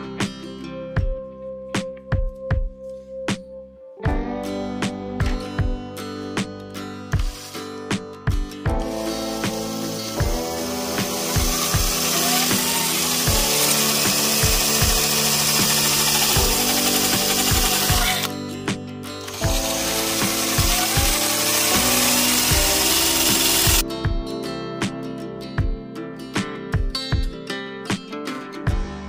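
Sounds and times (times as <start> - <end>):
music with strummed guitar: 4.0 - 29.0
drill saw cutting plastic: 8.9 - 18.3, 19.0 - 23.8.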